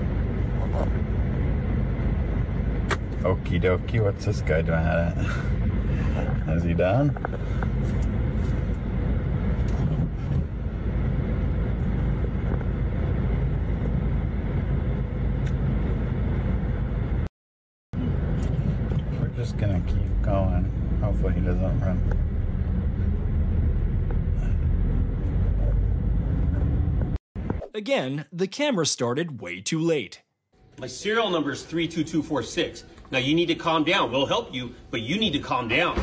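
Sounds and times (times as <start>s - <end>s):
car and road traffic rumble: 0.0s - 17.3s, 18.0s - 27.6s.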